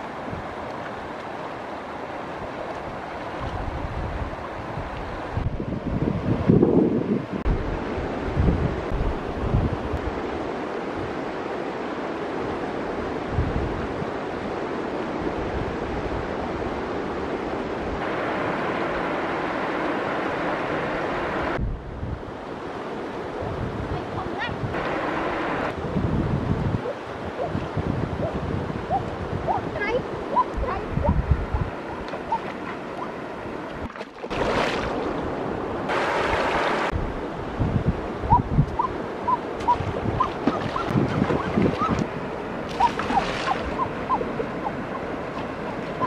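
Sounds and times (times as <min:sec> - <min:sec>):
river water running over stones: 0:00.0 - 0:05.3, 0:31.8 - 0:37.0, 0:39.2 - 0:46.0
wind rumbling on microphone: 0:00.0 - 0:46.0.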